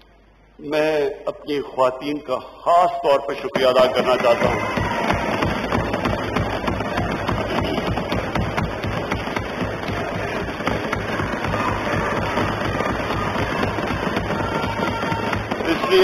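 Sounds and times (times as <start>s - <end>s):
people thumping desks: 3.4s - 16.0s.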